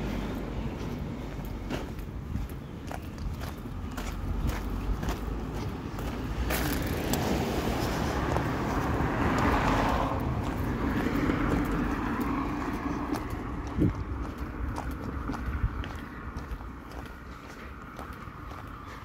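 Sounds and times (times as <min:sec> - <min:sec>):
car passing: 0:00.0 - 0:19.0
footsteps on pavement: 0:00.0 - 0:19.0.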